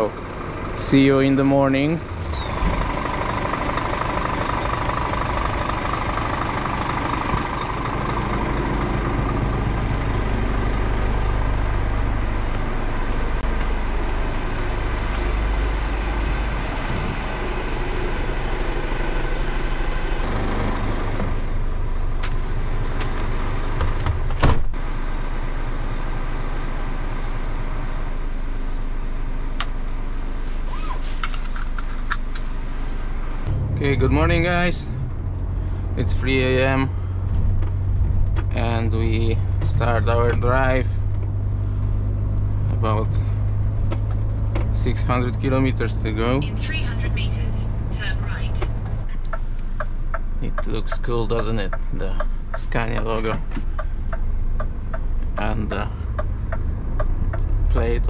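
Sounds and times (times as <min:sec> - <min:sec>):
truck diesel engine running: 0:00.0 - 0:58.0.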